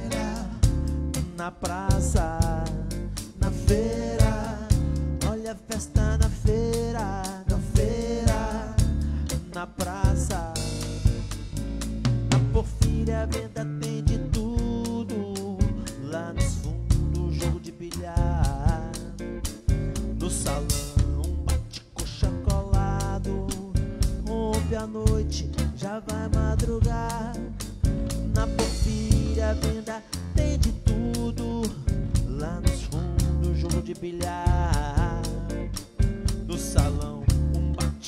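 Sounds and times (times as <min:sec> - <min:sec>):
man singing: 0:00.0 - 0:11.2, 0:12.5 - 0:19.3, 0:20.1 - 0:38.0
congas: 0:00.0 - 0:38.0
drum kit: 0:00.0 - 0:38.0
electric bass: 0:00.0 - 0:38.0
electric guitar: 0:00.0 - 0:38.0
live funk band: 0:00.0 - 0:38.0.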